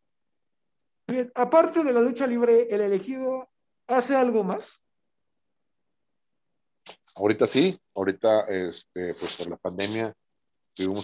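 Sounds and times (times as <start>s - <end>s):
man's voice: 7.2s - 10.1s, 10.8s - 11.0s.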